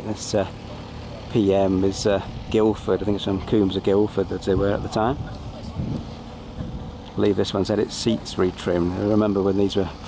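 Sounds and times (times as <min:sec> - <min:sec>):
outdoor background noise: 0:00.0 - 0:10.0
man speaking: 0:01.2 - 0:05.2, 0:07.1 - 0:10.0
wind rumbling on microphone: 0:04.5 - 0:07.1.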